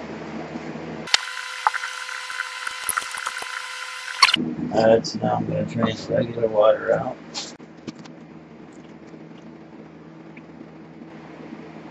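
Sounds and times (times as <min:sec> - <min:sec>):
faint hum: 0:00.0 - 0:11.9.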